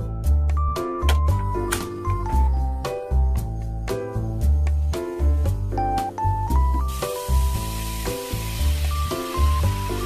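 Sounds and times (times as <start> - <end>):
food sizzling in a frying pan: 6.8 - 10.0.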